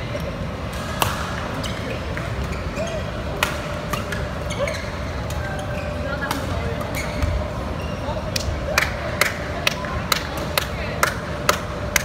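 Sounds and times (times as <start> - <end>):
racket hitting shuttlecock: 0.8 - 1.4.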